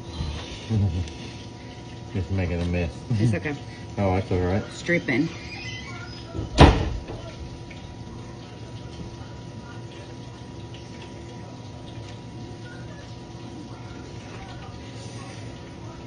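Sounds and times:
room hum with hiss: 0.0s - 16.0s
people eating mouth sounds: 0.1s - 1.8s.

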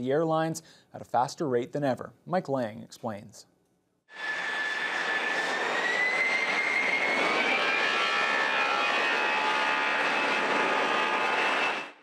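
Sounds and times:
jet engines roaring: 4.1s - 12.0s.

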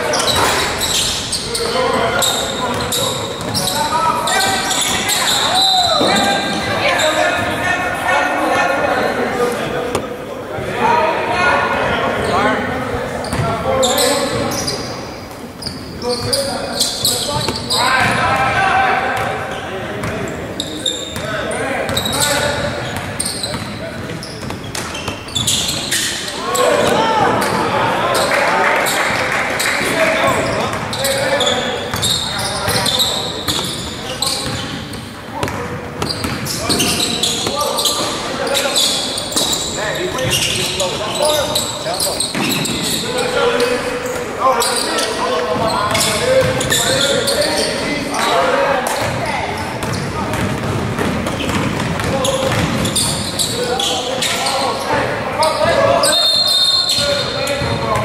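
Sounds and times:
sneakers squeaking: 0.0s - 10.2s, 11.8s - 58.0s
ball bouncing on hardwood court: 35.4s - 37.6s, 49.8s - 53.2s.

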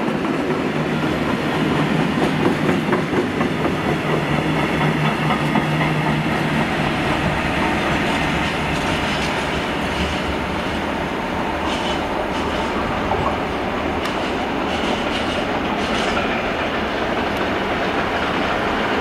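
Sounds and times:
freight train wheels on rails: 0.0s - 19.0s.

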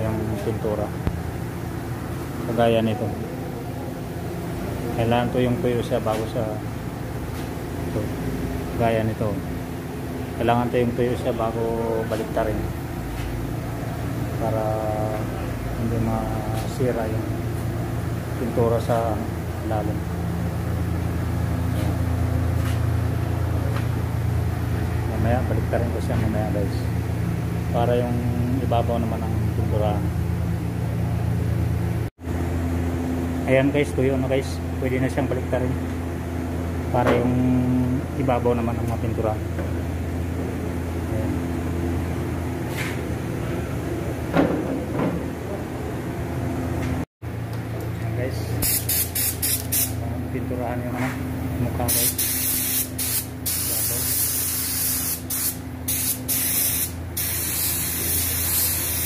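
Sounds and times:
steady low hum: 0.0s - 59.0s
spray gun bursts: 48.6s - 50.0s, 51.9s - 59.0s.

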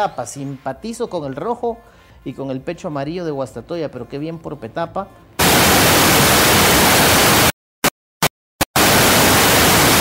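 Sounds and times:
man's voice: 0.0s - 5.2s
static hiss: 5.4s - 7.5s, 8.8s - 10.0s.

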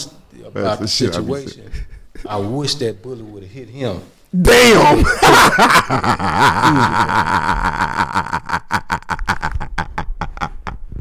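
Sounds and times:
man laughing breathlessly: 1.7s - 2.3s, 5.1s - 11.0s.

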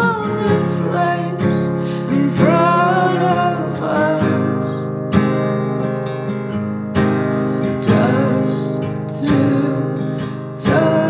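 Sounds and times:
acoustic guitar strumming: 0.0s - 11.0s.

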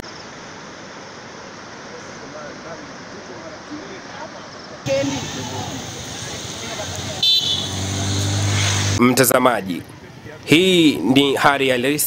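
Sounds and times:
steady background noise: 0.0s - 12.0s
faint voices: 1.8s - 8.2s
vehicle engine humming: 4.9s - 10.8s
vehicle horn toot: 6.8s - 9.0s.

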